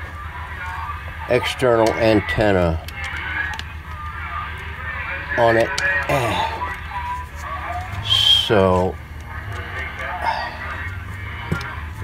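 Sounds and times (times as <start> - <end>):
radio hum: 0.0 - 12.0
voices from shortwave radio: 0.0 - 12.0.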